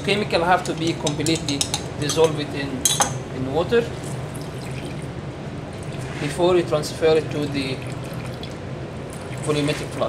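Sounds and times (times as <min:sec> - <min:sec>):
low steady hum: 0:00.0 - 0:10.0
water trickling into beaker: 0:04.3 - 0:05.1.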